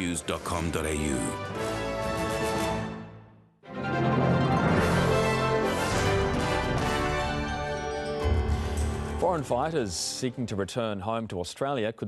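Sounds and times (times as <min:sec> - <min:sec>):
news theme music: 0:00.0 - 0:11.0.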